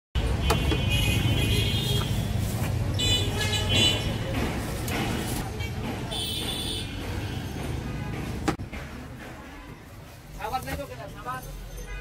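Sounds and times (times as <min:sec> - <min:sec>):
car horns: 0:00.2 - 0:02.4, 0:03.0 - 0:04.2
street traffic rumbling: 0:00.2 - 0:12.0.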